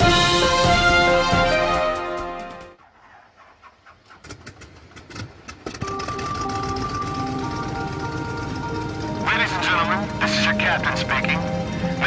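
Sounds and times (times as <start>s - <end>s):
aircraft engines humming: 0.0s - 12.0s
engine whining tones: 0.0s - 12.0s.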